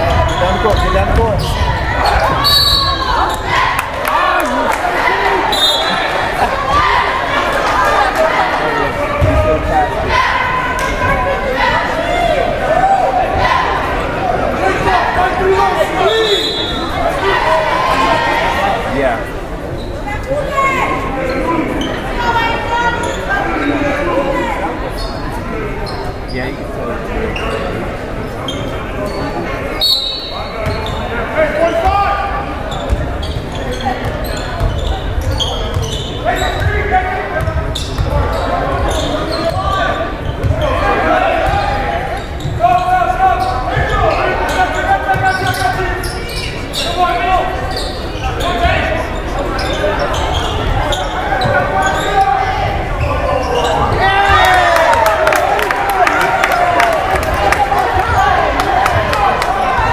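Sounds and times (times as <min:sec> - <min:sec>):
crowd chatter in gym: 0:00.0 - 0:59.9
basketball bouncing on court: 0:32.8 - 0:36.0, 0:37.4 - 0:38.4.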